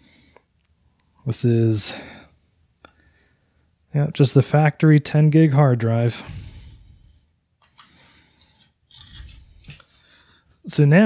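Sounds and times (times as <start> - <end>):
metallic clicks and scrapes: 7.6 - 10.8.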